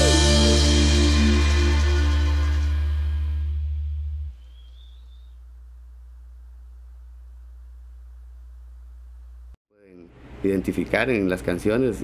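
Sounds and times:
reggae band final chord: 0:00.0 - 0:03.8
faint low hum: 0:04.4 - 0:11.0.

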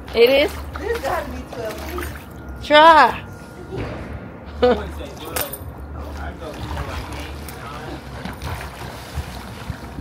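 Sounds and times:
water splashing from swimming: 0:00.0 - 0:02.6, 0:06.0 - 0:10.0.

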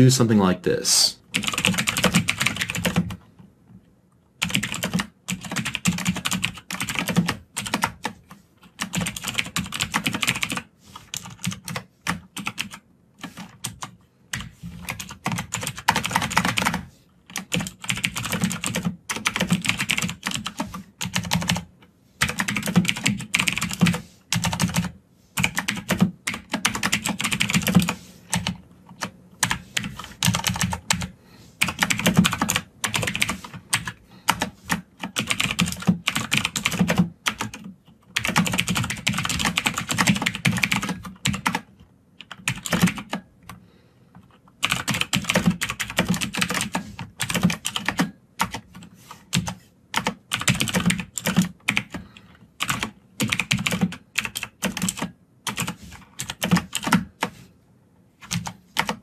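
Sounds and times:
computer keyboard typing: 0:01.3 - 0:03.2, 0:04.4 - 0:43.6, 0:44.2 - 0:57.3, 0:58.2 - 0:59.0.

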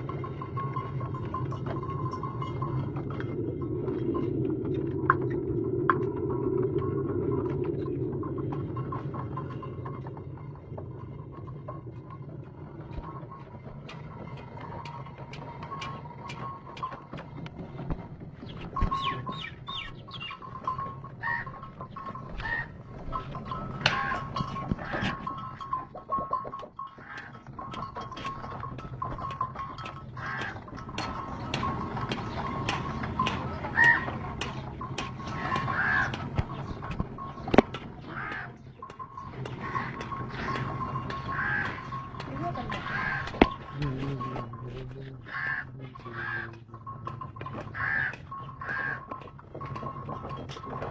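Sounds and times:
low hum: 0:00.0 - 0:26.0, 0:27.5 - 0:50.9
stone mill clicks and knocks: 0:00.0 - 0:45.0, 0:46.0 - 0:50.9.

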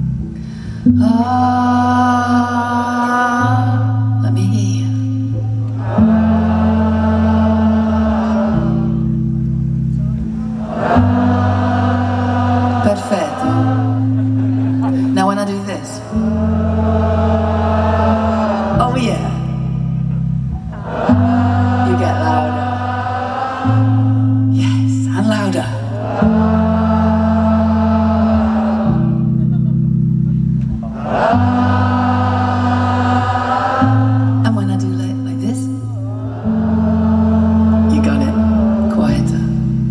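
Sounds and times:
live band bass notes: 0:00.0 - 0:39.9
crowd singing wordless line: 0:05.3 - 0:39.9.

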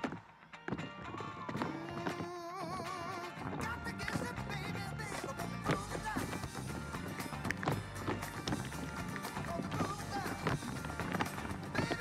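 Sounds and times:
tap shoes clicking on stage: 0:00.0 - 0:12.0
recorded song with singing: 0:01.2 - 0:06.9, 0:09.2 - 0:12.0.

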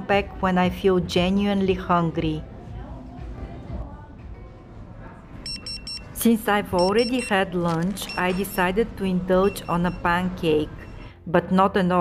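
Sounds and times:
food hall din: 0:04.8 - 0:11.1
pager beeping: 0:05.5 - 0:11.1.

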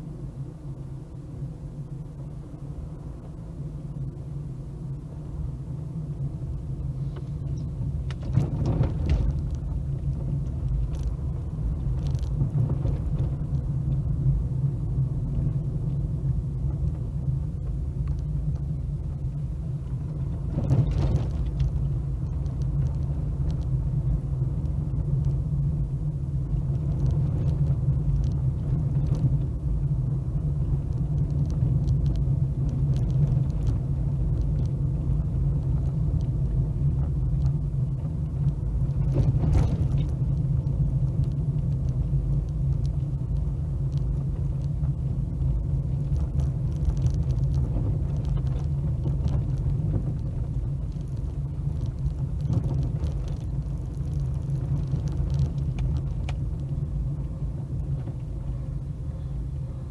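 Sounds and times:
car driving interior rumble: 0:00.0 - 0:59.9.

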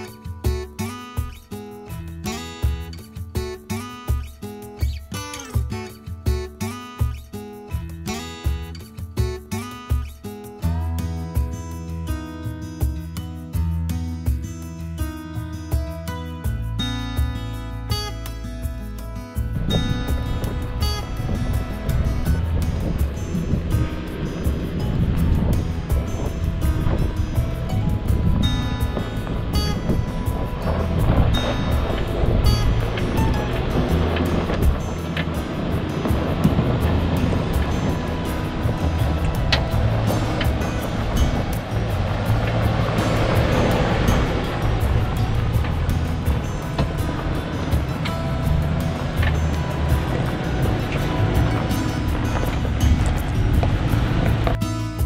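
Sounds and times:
background music: 0:00.0 - 0:55.0
engine rumble: 0:07.0 - 0:55.0
wind on microphone: 0:19.4 - 0:54.6.

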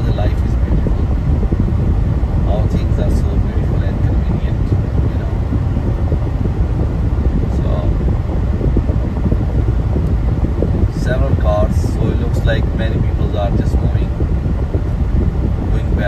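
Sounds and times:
car road and wind noise: 0:00.0 - 0:16.0.

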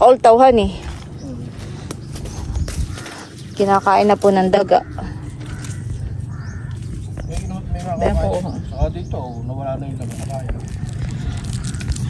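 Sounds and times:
low rumble: 0:00.0 - 0:12.0.

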